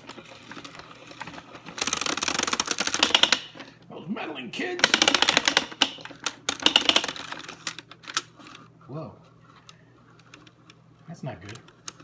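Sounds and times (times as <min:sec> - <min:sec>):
plastic projector mechanism clicking: 0:00.0 - 0:03.7, 0:04.8 - 0:08.6.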